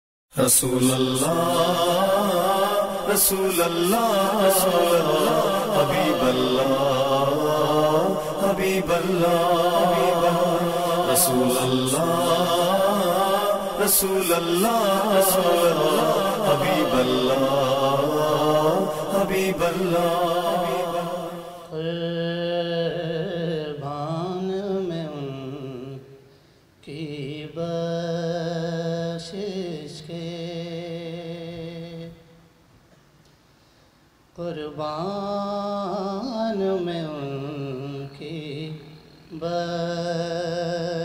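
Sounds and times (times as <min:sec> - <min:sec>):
man chanting: 0:00.4 - 0:26.0, 0:34.4 - 0:41.0
man singing unaccompanied: 0:00.4 - 0:26.1, 0:26.8 - 0:32.2, 0:34.3 - 0:41.0.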